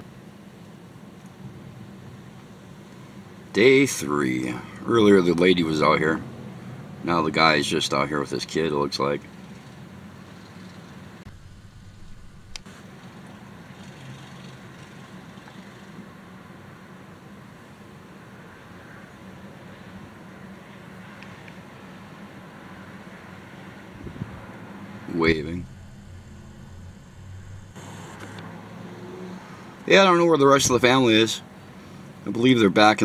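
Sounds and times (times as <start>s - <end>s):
road traffic hum: 0.0s - 32.6s.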